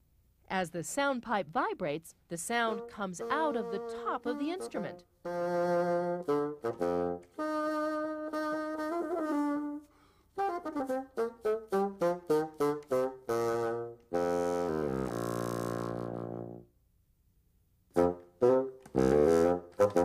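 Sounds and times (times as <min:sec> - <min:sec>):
solo bassoon: 0:02.6 - 0:16.7, 0:17.9 - 0:20.0.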